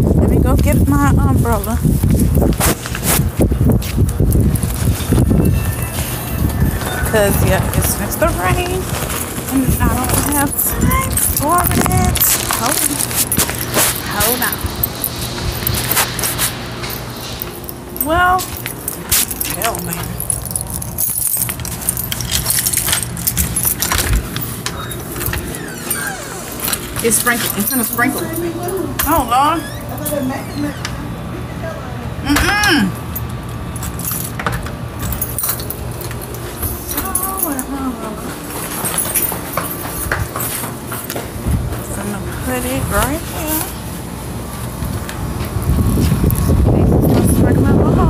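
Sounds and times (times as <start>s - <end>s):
low microphone rumble: 0.0s - 32.4s, 41.3s - 48.0s
footsteps: 0.5s - 31.0s, 35.0s - 47.4s
phone rustling against clothing: 1.8s - 29.2s.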